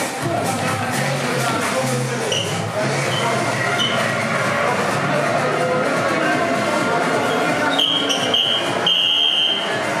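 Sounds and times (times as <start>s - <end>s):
background chatter: 0.0s - 10.0s
music: 0.0s - 10.0s
shrill high-pitched signal tone: 7.7s - 9.7s.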